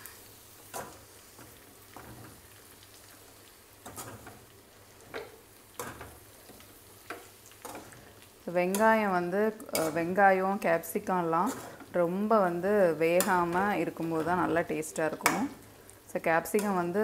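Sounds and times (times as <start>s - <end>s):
faint sizzle: 0.0s - 17.0s
metal spatula scraping a pan: 0.6s - 3.0s, 3.8s - 10.2s, 11.2s - 15.4s.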